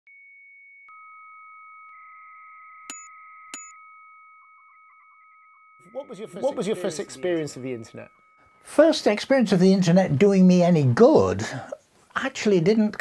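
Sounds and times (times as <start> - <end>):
lower electronic beep: 0.9 - 8.8.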